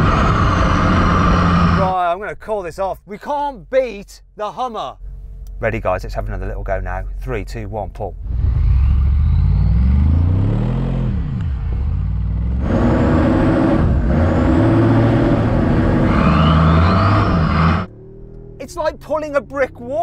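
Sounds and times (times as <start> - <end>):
engines revving under load: 0.0 - 1.9, 8.2 - 20.0.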